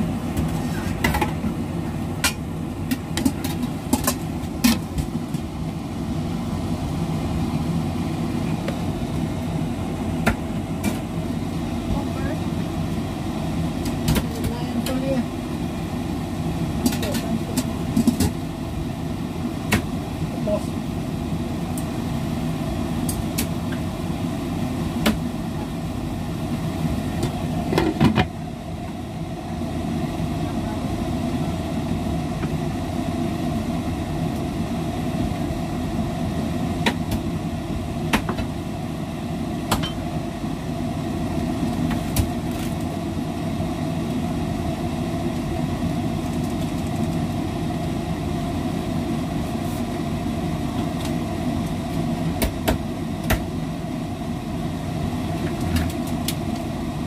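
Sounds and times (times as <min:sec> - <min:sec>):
steady hum: 0:00.0 - 0:57.0.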